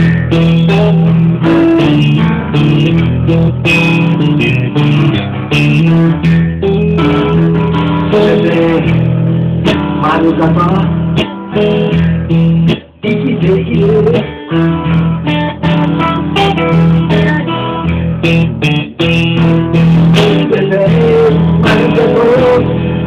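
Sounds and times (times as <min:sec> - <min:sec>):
guitar: 0:00.0 - 0:23.0.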